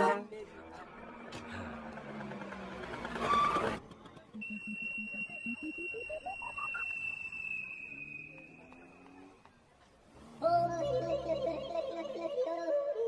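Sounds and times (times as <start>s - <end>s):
high whistle-like tone: 4.4s - 9.1s.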